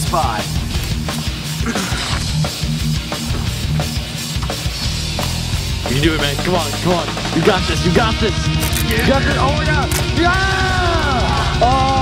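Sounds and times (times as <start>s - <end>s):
rock music: 0.0s - 12.0s
steady drum beat: 0.0s - 12.0s.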